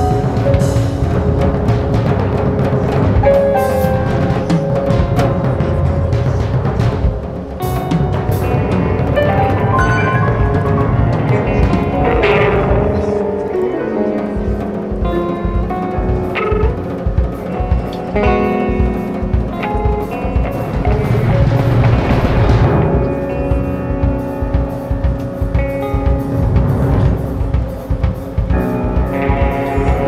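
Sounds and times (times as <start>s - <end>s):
drum kit hits: 0.0s - 30.0s
instrumental band music: 0.0s - 30.0s.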